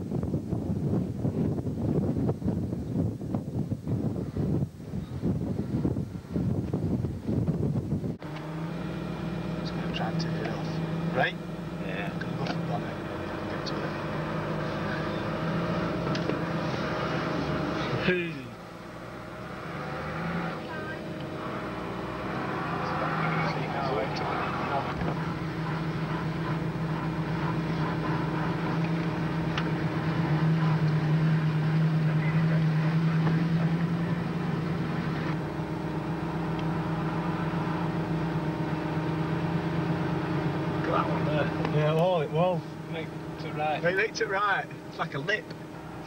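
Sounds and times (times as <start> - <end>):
car engine running: 0.0 - 46.0.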